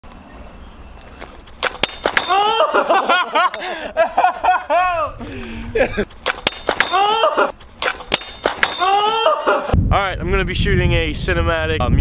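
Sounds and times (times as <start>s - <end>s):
scooter clacks: 1.0s - 2.6s, 6.0s - 9.2s.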